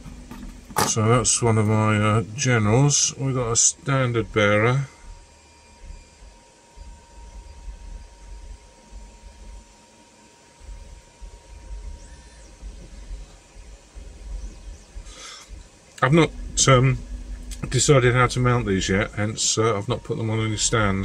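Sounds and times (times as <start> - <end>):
faint steady hum: 0.0 - 21.0
soft low rumbles: 10.6 - 21.0.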